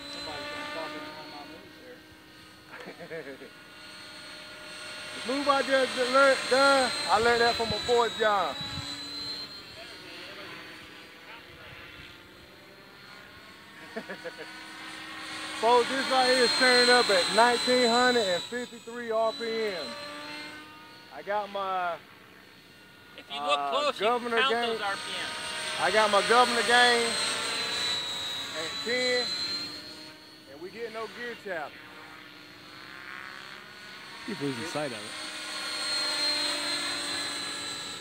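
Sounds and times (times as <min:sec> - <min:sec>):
rc helicopter rotor whir: 0:00.0 - 0:38.0
thin motor whine: 0:00.0 - 0:38.0
man talking: 0:05.2 - 0:08.6, 0:15.6 - 0:19.9, 0:21.2 - 0:22.0, 0:23.2 - 0:27.2, 0:28.6 - 0:29.4, 0:30.5 - 0:31.7, 0:34.3 - 0:35.1.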